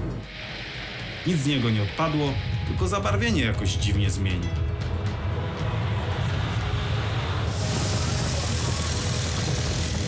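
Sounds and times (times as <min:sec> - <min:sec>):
background music: 0:00.0 - 0:10.0
small car engine running: 0:05.2 - 0:10.0
high hiss: 0:07.5 - 0:10.0.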